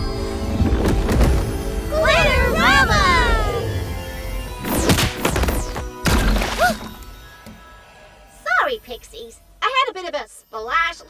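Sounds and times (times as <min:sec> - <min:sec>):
magic sparkle effects: 0:00.0 - 0:11.0
high gliding cry: 0:01.8 - 0:04.6
cartoon music: 0:01.8 - 0:05.7.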